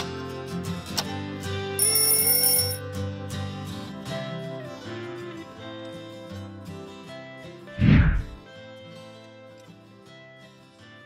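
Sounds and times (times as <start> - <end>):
bright high chime: 1.8 - 2.8
acoustic guitar music: 2.8 - 11.0.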